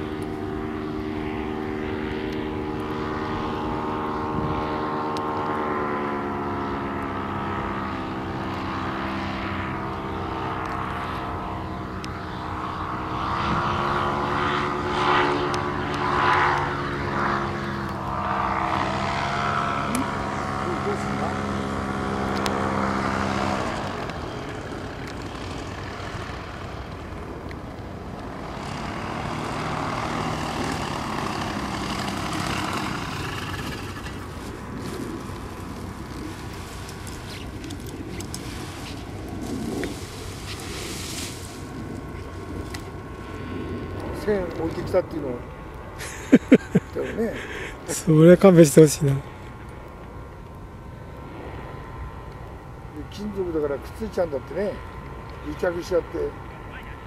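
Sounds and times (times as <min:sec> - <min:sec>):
paramotor engine droning: 0:00.0 - 0:57.0.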